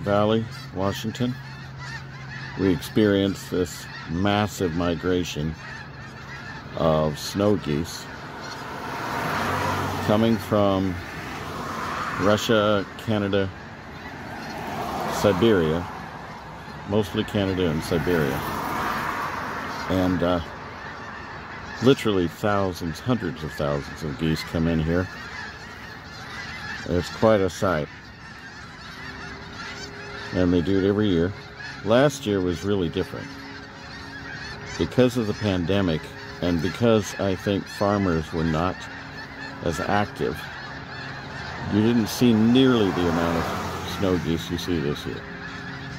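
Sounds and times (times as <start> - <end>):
car approaching on road: 0.0 - 45.9
flock of geese honking: 0.0 - 45.9.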